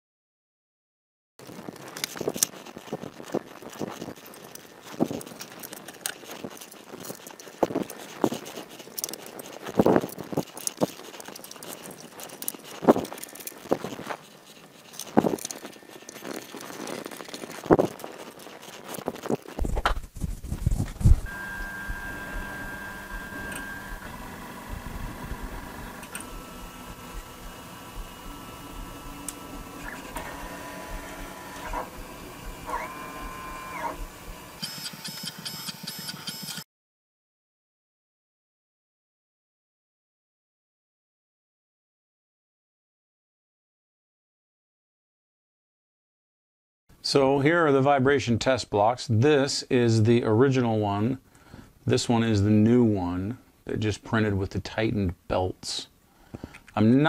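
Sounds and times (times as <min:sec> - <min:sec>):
hands handling plastic parts: 0:01.5 - 0:21.4
printer stepper motors whining: 0:21.2 - 0:36.6.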